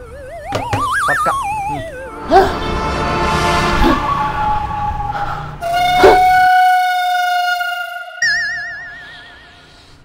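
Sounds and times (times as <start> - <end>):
held electronic tones: 0.0 - 2.2.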